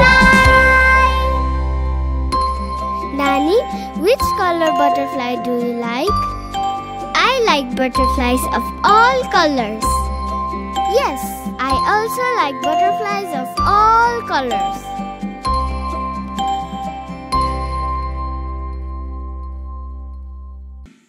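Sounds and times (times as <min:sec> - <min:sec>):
child-like voices singing: 0:00.0 - 0:01.4
jingly instrumental backing: 0:00.0 - 0:20.3.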